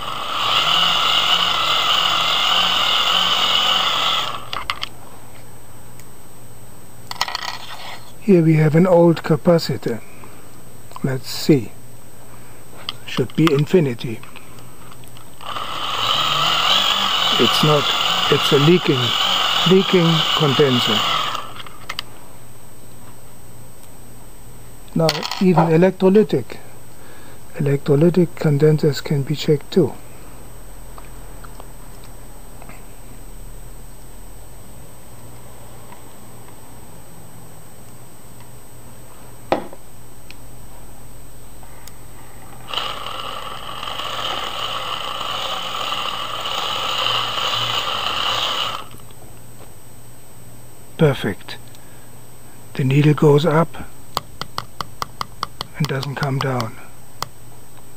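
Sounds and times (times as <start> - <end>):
hand-cranked dynamo whirring down: 0.0 - 4.6, 15.4 - 21.7, 42.6 - 48.9.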